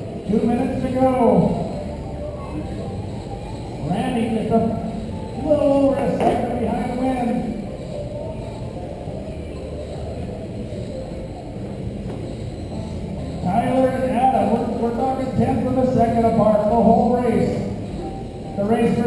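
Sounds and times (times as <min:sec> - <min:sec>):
electric toy race cars running: 0:00.0 - 0:19.0
echoing public-address voice: 0:13.4 - 0:17.8.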